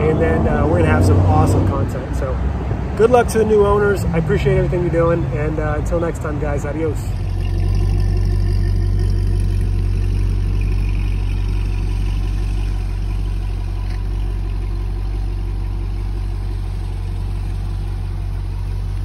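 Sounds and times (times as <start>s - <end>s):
car engine idling with deep rumble: 0.0s - 19.0s.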